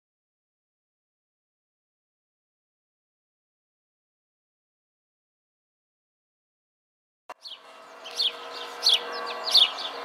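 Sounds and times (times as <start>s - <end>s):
songbird chirping: 7.3s - 10.0s.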